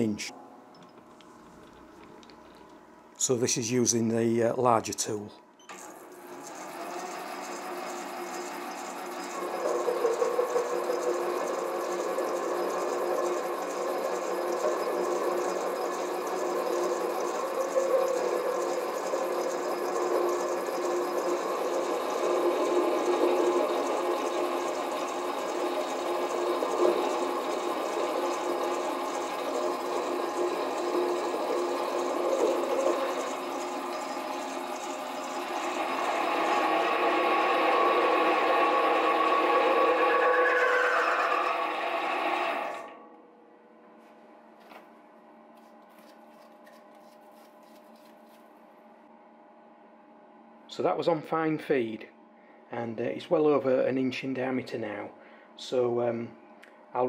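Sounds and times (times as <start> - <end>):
lathe machine whine: 5.6 - 43.2
tool cutting metal: 5.7 - 43.0.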